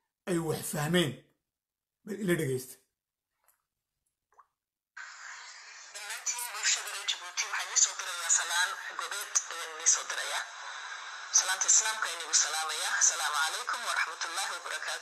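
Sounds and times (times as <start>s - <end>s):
tinny speech through phone speaker: 5.9s - 10.6s, 11.3s - 15.0s.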